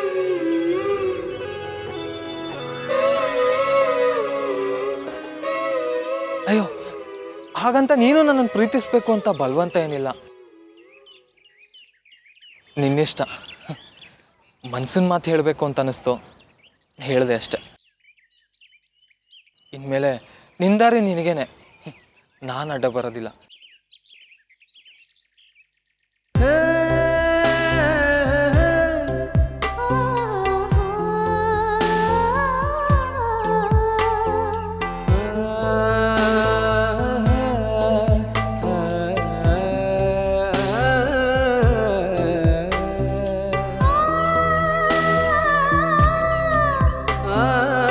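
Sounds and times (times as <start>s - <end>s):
wavering vocal melody: 0.0s - 11.5s, 26.4s - 47.9s
birds chirping: 0.0s - 47.9s.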